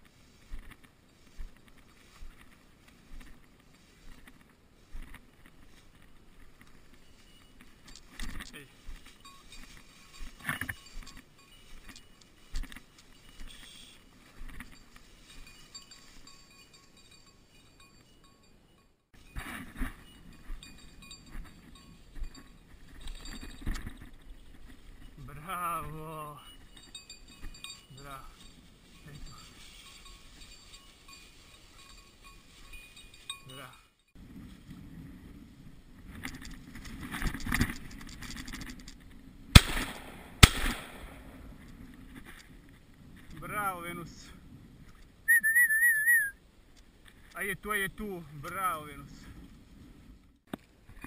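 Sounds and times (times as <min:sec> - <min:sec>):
footsteps through dry grass: 0:00.0 - 0:17.6, 0:19.2 - 0:33.4, 0:34.2 - 0:43.9
light clinks and knocks: 0:00.6 - 0:25.3, 0:26.4 - 0:34.2.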